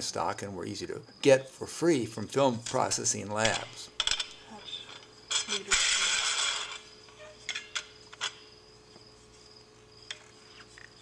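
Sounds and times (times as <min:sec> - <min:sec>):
metal rubbing scrape: 0:04.5 - 0:08.4.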